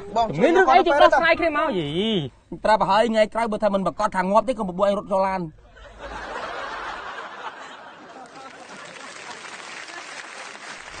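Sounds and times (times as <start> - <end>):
audience applauding: 7.8 - 11.0.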